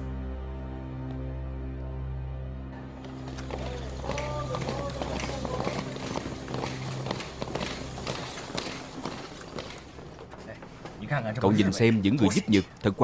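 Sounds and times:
low background music: 0:00.0 - 0:12.9
booted footsteps on pavement: 0:02.9 - 0:11.4.

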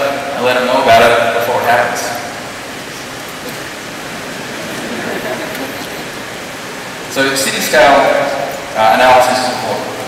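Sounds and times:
steady room noise hiss: 0:00.0 - 0:10.0.

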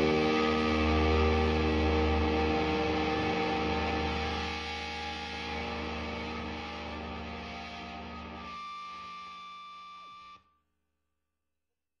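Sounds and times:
high steady tone: 0:00.0 - 0:07.5
distorted electric guitar chord: 0:00.0 - 0:09.3.

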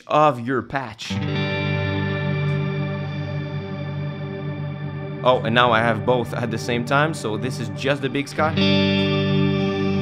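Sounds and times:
sustained guitar chord wash: 0:01.1 - 0:10.0.

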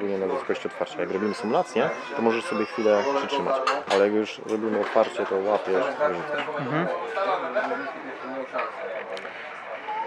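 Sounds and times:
faint background noise: 0:00.0 - 0:10.0
low male voices: 0:06.2 - 0:07.0.

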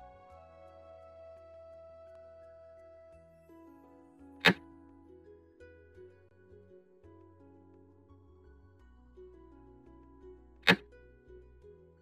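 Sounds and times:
soft plucked-string music: 0:00.0 - 0:12.0.

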